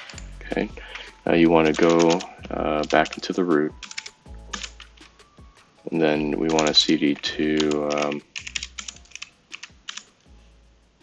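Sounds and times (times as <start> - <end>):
computer keyboard typing: 0.9 - 5.1, 6.4 - 10.1.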